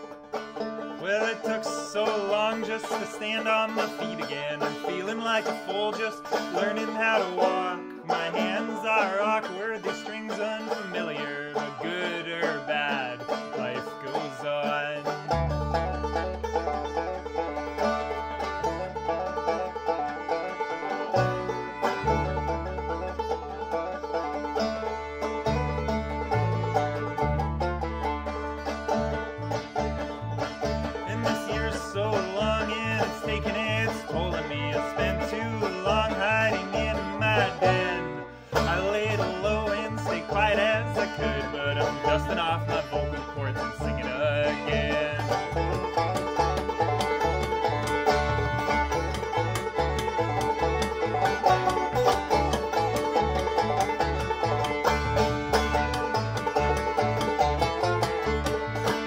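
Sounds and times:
clawhammer banjo: 0.0 - 59.0
fiddle: 0.0 - 59.0
upright bass: 0.0 - 59.0.

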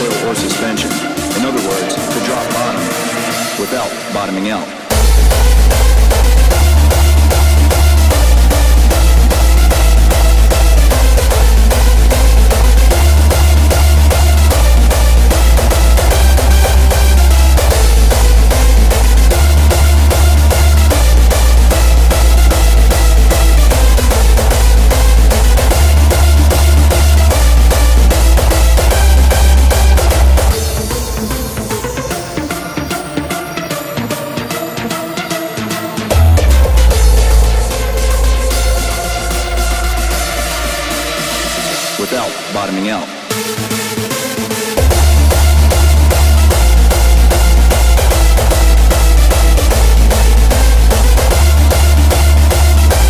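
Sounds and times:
deep sub-bass line: 0.0 - 32.3, 36.1 - 42.4, 44.7 - 53.0
pounding kick drum: 4.9 - 31.9, 36.1 - 40.5, 44.8 - 53.0.

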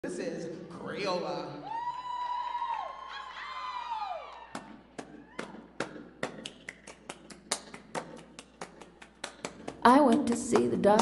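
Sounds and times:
audience cheering woo calls: 1.6 - 5.6
scattered handclaps: 4.5 - 11.0.

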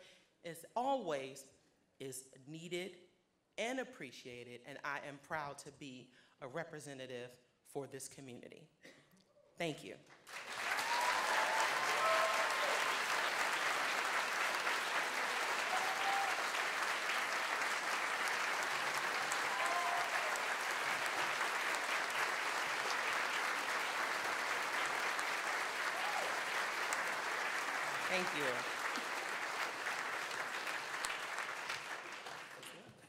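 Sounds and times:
audience applauding: 10.3 - 33.0
whoops: 10.6 - 13.1, 15.4 - 16.6, 19.1 - 20.6, 25.8 - 26.6.

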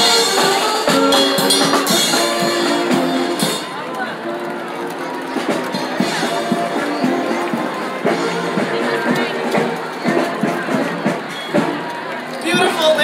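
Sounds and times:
crowd chatter: 0.0 - 13.0
drum beats: 0.0 - 13.0
parade band music: 0.0 - 13.0.

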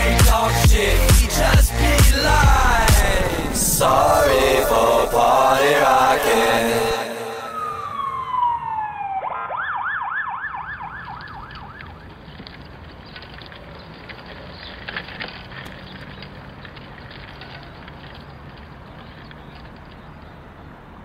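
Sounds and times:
dance-pop music: 0.0 - 8.0
falling tone: 1.7 - 11.8
siren yelping: 2.5 - 12.1.

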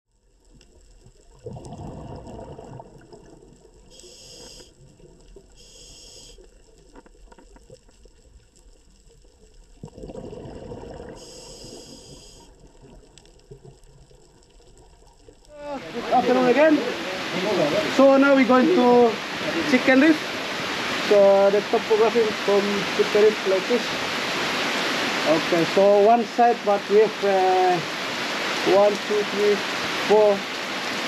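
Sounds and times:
exhaled bubbles rushing underwater: 0.2 - 5.7, 6.5 - 16.0
regulator hisses: 3.9 - 4.8, 5.6 - 6.5, 11.2 - 12.5.

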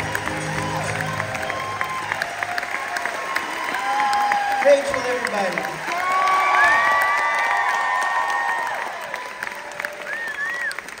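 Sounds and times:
audience applauding and cheering: 0.0 - 11.0.

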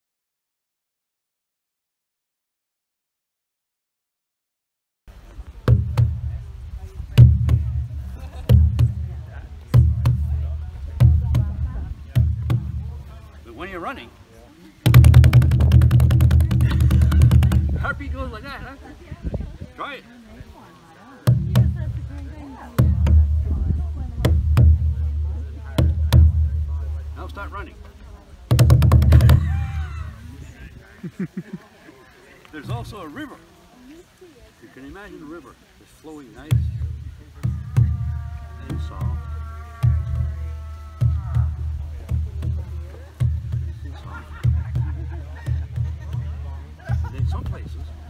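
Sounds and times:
deep rawhide drum beats: 5.1 - 14.0, 14.8 - 19.4, 21.2 - 31.6, 32.6 - 33.2, 35.8 - 48.0.

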